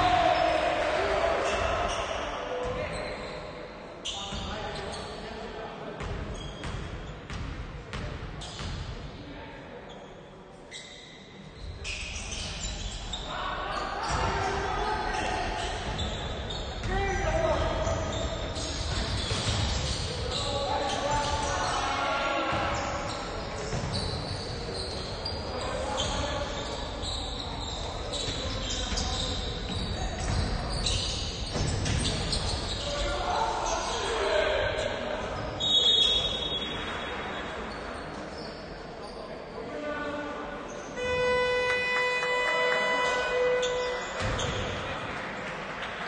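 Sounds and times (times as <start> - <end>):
players shouting: 0.0 - 3.0.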